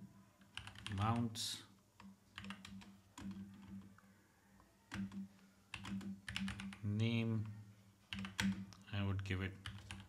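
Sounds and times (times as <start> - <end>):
typing on computer keyboard: 0.4 - 1.3, 2.0 - 4.0, 4.9 - 8.8, 9.6 - 10.0.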